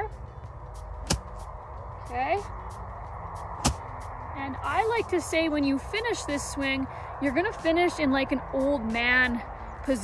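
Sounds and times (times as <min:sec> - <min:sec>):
golf club swishing through grass: 0:00.8 - 0:01.6, 0:02.6 - 0:04.2.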